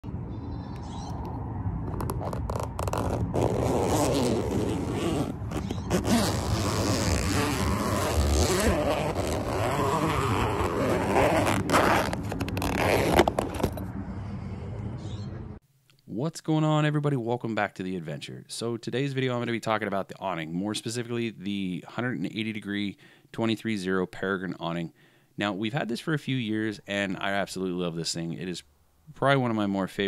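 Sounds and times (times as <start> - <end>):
vinyl fabric scraping: 1.9 - 13.8
zipper running: 1.9 - 13.8.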